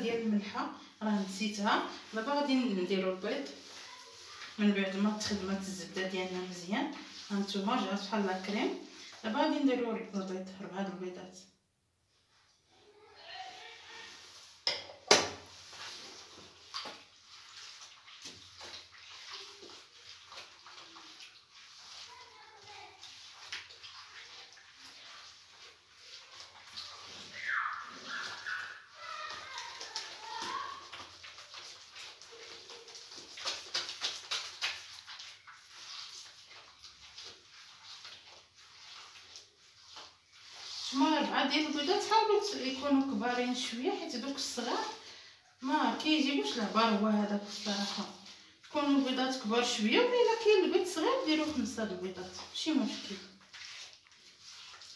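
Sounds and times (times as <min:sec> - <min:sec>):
hand squishing wet mixture: 0:00.0 - 0:11.4, 0:12.1 - 0:54.9.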